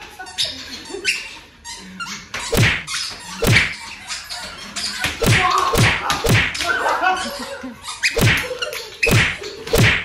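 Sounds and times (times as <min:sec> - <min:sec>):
people yelping and squealing: 0:00.0 - 0:09.8
stick whacking with a thunk: 0:02.5 - 0:03.8, 0:05.2 - 0:06.6, 0:08.2 - 0:08.4, 0:09.1 - 0:10.0.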